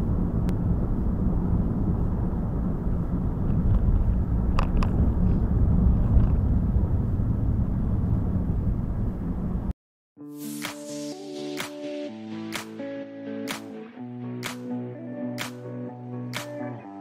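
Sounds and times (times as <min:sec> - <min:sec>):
car tyre and engine rumble: 0:00.0 - 0:09.7.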